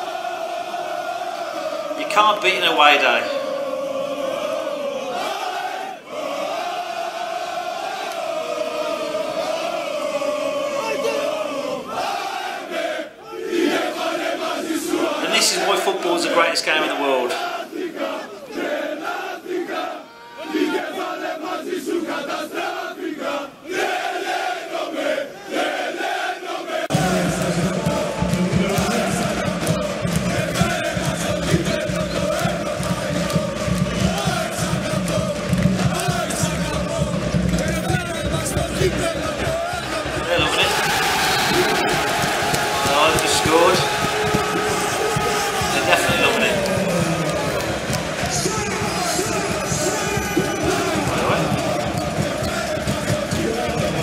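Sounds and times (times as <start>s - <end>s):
crowd chanting in unison: 0.0s - 54.0s.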